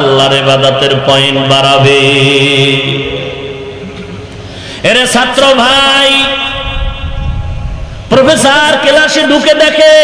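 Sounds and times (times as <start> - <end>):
man chanting melodic notes: 0.0 - 3.6.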